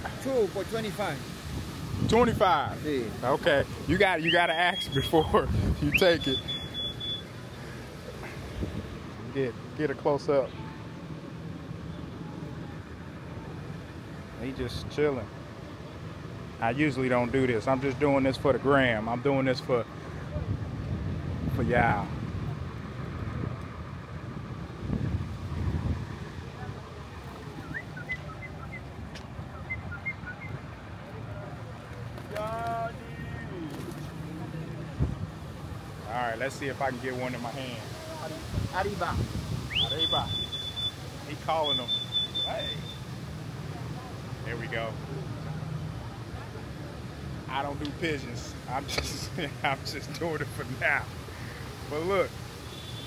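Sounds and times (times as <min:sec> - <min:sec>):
distant traffic: 0:00.0 - 0:53.0
high-pitched electronic beep: 0:06.0 - 0:07.3, 0:41.6 - 0:43.0.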